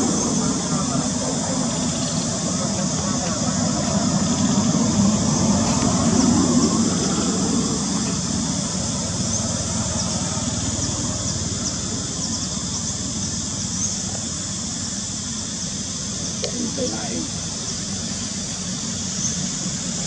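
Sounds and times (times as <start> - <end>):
indistinct voices: 0.0 - 7.4, 16.3 - 17.4.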